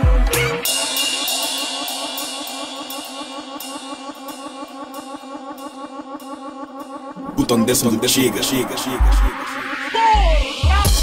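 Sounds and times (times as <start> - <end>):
club dance music: 7.2 - 11.0.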